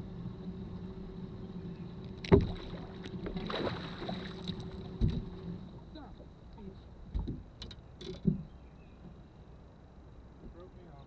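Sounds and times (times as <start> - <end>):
low motor hum: 0.0 - 11.0
water splashing: 2.2 - 5.3.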